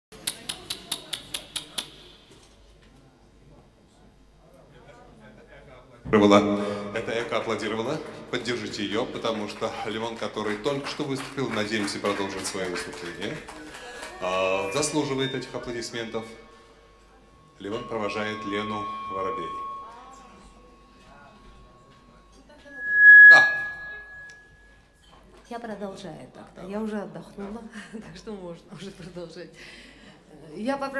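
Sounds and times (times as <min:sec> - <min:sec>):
low room murmur: 0:00.1 - 0:06.3
sharp hand claps: 0:08.8 - 0:14.2
microphone feedback squeal: 0:14.2 - 0:24.8.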